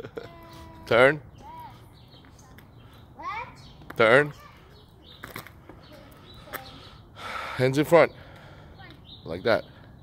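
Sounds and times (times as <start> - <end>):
quiet outdoor background: 0.0 - 10.0.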